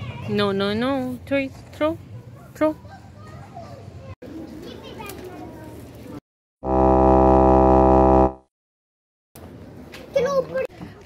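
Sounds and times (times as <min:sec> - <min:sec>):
distant children's voices: 0:00.0 - 0:00.5, 0:02.0 - 0:06.2
buzzy tone sound effect: 0:06.6 - 0:08.4.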